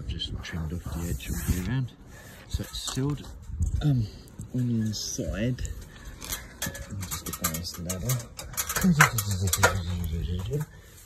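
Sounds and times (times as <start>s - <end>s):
man speaking in low tones: 0.0s - 5.8s, 6.7s - 10.7s.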